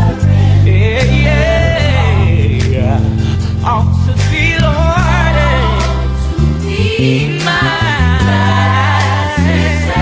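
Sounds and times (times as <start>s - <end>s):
electric bass guitar: 0.0s - 10.0s
gospel choir singing: 0.0s - 10.0s.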